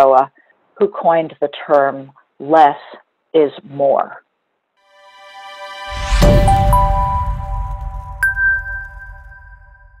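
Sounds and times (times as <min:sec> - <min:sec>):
chime logo jingle: 0:05.0 - 0:10.0.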